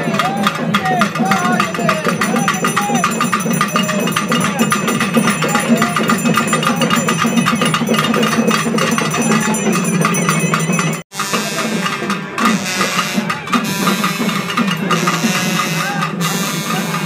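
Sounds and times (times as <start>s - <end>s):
crowd voices: 0.0s - 17.0s
fast festival drumming: 0.0s - 17.0s.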